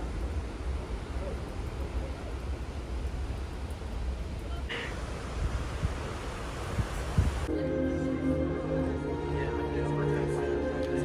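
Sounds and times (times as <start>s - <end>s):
wind rushing over microphone: 0.0s - 7.5s
soft music: 7.5s - 11.0s.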